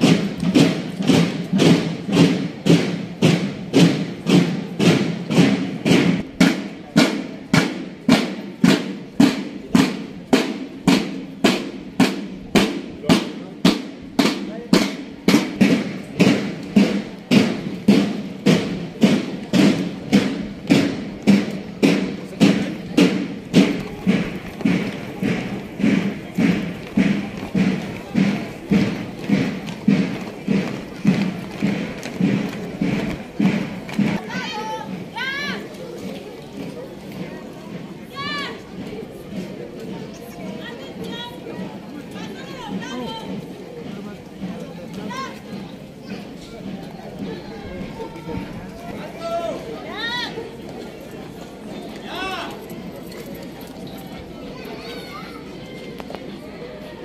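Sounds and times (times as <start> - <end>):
marching drum beating: 0.0 - 52.9.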